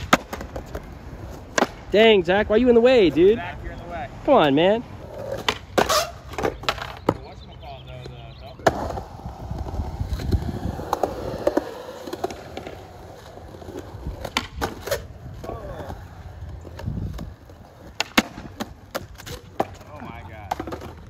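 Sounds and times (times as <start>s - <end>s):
skateboard tail clacks: 0.0s - 2.0s, 4.4s - 7.3s, 8.0s - 21.0s
skateboard wheels rolling on concrete: 0.0s - 21.0s.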